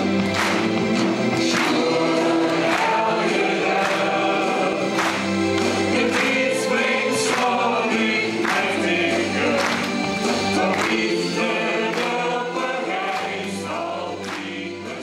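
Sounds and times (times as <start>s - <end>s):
choir singing: 0.0s - 15.0s.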